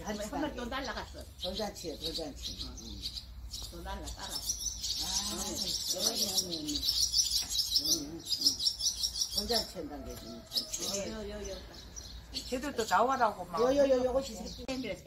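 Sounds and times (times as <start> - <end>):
swallows twittering: 0.0 - 15.0.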